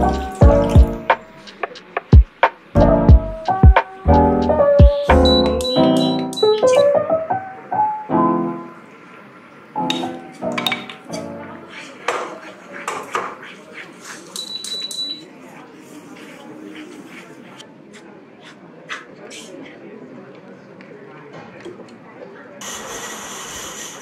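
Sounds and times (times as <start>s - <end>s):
piano music: 0.0s - 1.4s, 2.8s - 9.0s, 9.6s - 11.7s
spatula scraping in a wok: 11.6s - 17.6s.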